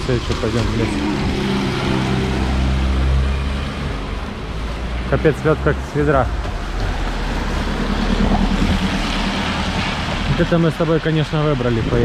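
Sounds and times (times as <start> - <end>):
car tyres swishing on wet road: 0.0 - 12.0
heavy rain pouring: 0.0 - 12.0.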